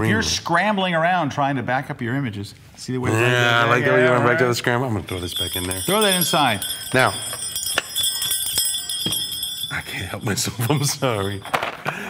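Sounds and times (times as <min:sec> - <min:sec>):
small bells jingling: 0:05.0 - 0:12.0.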